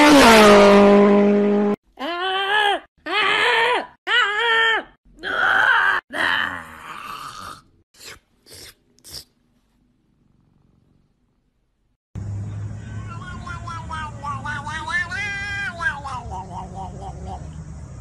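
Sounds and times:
person groaning yawn: 5.2 - 7.8.

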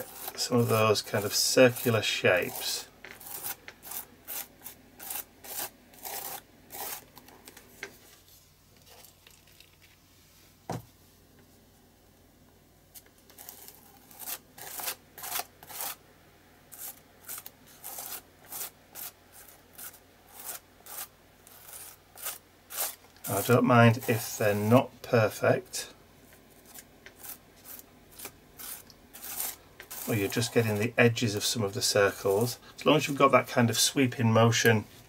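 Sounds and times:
palette knife scraping on stencil: 0.0 - 7.1, 13.3 - 16.0, 16.7 - 24.7, 26.6 - 31.0.

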